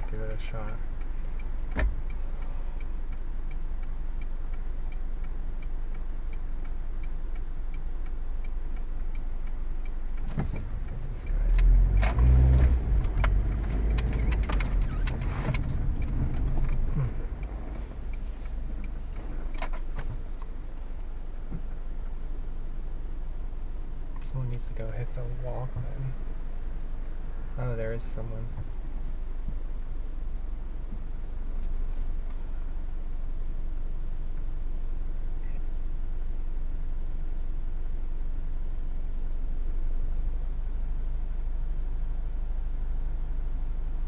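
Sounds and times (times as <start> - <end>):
car engine and road noise: 0.0 - 44.0
clicks: 10.2 - 20.5.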